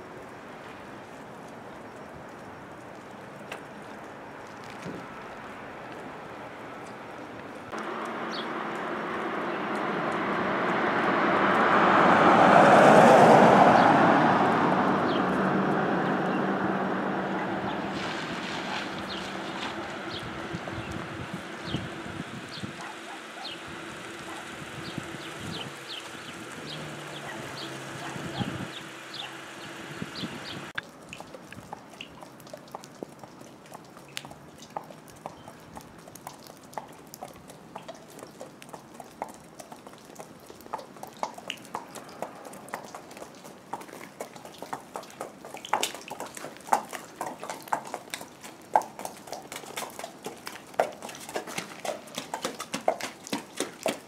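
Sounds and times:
horse hooves clopping on pavement: 0.0 - 54.0
vehicle passing on wet street: 0.0 - 54.0.

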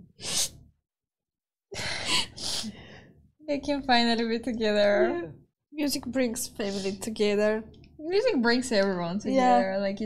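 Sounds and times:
woman crying breathing: 1.8 - 3.1.

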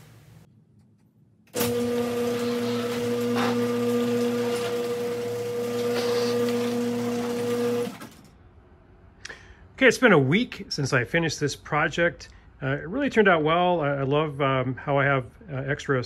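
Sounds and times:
garage door opener motor hum: 1.5 - 8.4.

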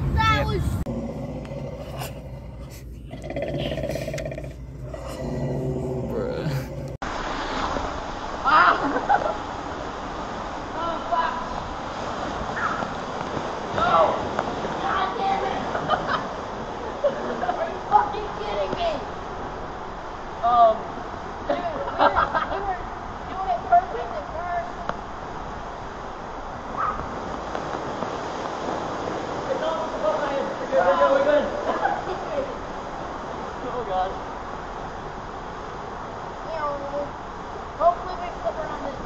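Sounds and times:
water rushing through slide tube: 3.9 - 39.0.

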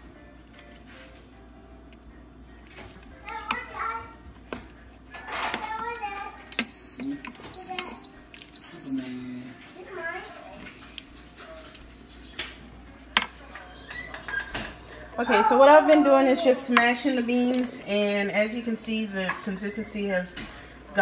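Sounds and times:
child talking: 3.2 - 4.2, 5.4 - 6.5, 9.8 - 10.8
pressure cooker beeping: 6.5 - 9.2.

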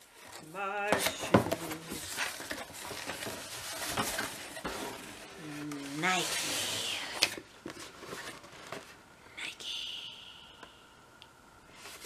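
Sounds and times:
cardboard rustling and scraping: 0.9 - 9.0.

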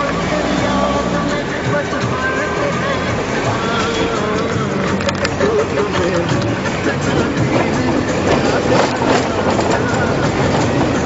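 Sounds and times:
car engine and road noise: 0.0 - 11.0
knocks and rattles: 3.2 - 11.0.

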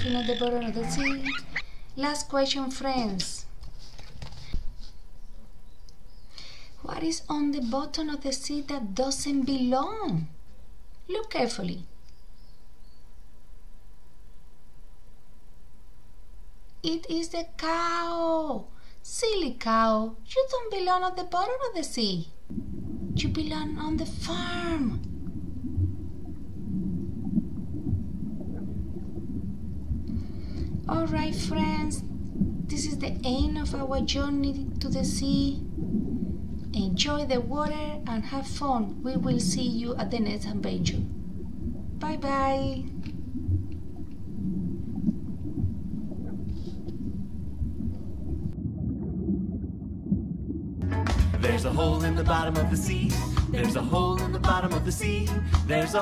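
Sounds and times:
faint warbling tones: 0.0 - 1.8
low underwater rumble: 22.3 - 54.6.

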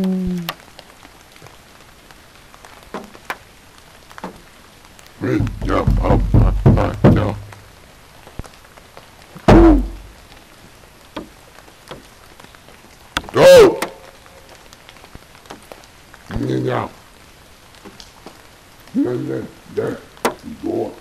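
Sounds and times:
man whooping: 9.4 - 10.0, 13.3 - 14.1.

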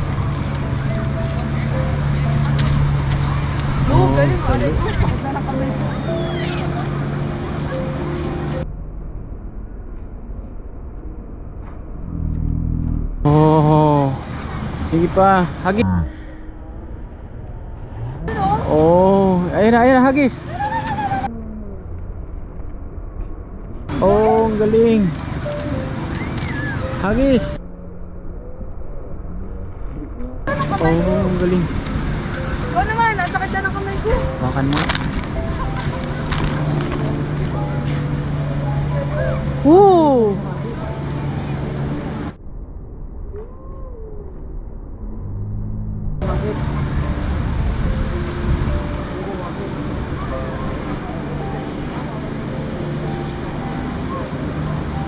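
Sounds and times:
wind: 0.0 - 55.0
person speaking: 15.4 - 16.3.

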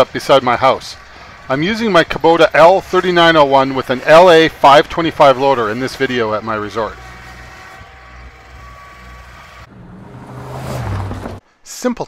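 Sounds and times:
tractor diesel engine running: 0.0 - 11.4.

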